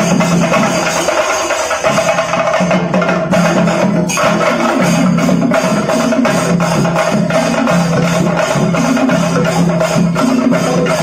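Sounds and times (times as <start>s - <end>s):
drums beaten with sticks: 0.0s - 11.0s.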